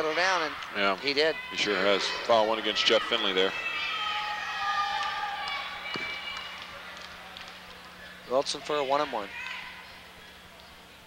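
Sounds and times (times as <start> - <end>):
crowd of voices in a gymnasium: 0.0 - 11.0.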